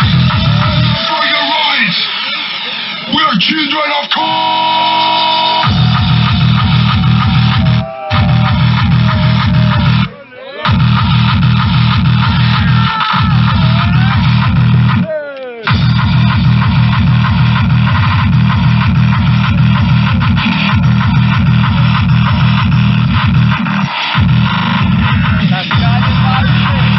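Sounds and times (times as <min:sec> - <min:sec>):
loud tekno with kick drum: 0:00.0 - 0:26.9.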